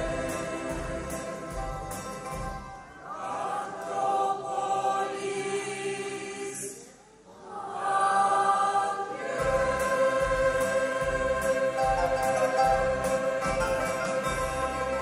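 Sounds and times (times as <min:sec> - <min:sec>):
accompaniment with low beat: 0:00.0 - 0:02.8, 0:09.3 - 0:15.0
mixed choir singing: 0:00.0 - 0:15.0.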